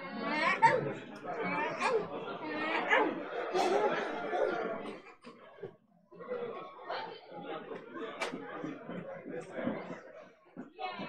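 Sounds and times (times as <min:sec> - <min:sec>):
people talking at once: 0:00.0 - 0:11.0.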